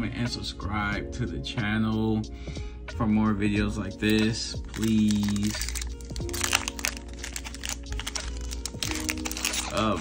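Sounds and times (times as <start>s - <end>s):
background music with held tones: 0.0s - 10.0s
foil wrapper crackling: 4.0s - 10.0s.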